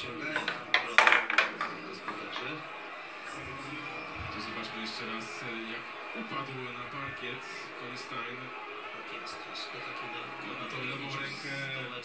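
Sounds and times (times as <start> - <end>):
commentator speaking: 0.0 - 12.0.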